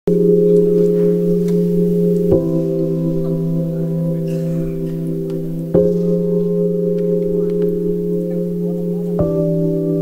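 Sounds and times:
keyboard chords: 0.1 - 10.0.

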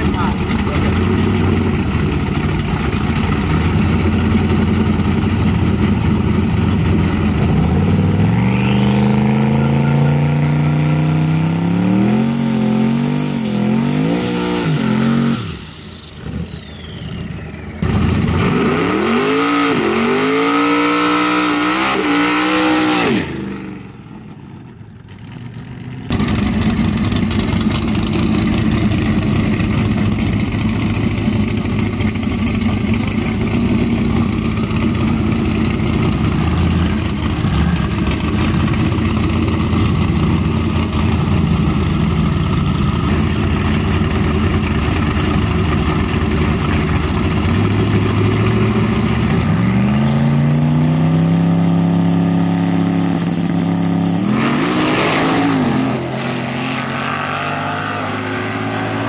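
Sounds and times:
car engines idling loudly: 0.0 - 10.8, 24.1 - 49.7
car engine revving through gear shifts: 17.8 - 23.4, 45.5 - 59.0.

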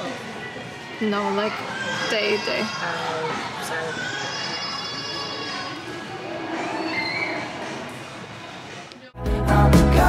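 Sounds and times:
shop hubbub: 0.0 - 9.2.

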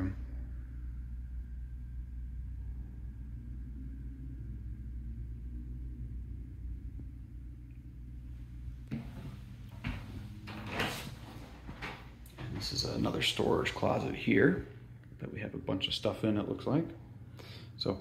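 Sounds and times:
low camera rumble: 0.0 - 18.0.

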